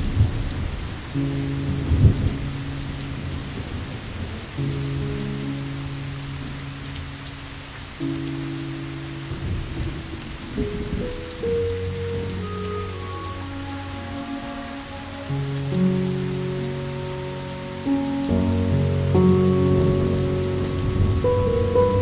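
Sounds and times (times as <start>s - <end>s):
slow meditation music: 0.0s - 22.0s
steady rain: 0.0s - 22.0s.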